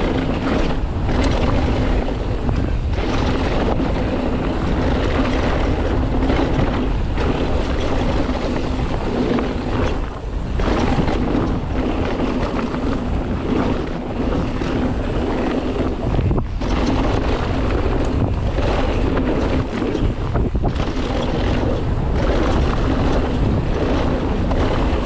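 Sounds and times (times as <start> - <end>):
bike rattling: 0.0 - 25.0
wind buffeting microphone: 0.0 - 25.0.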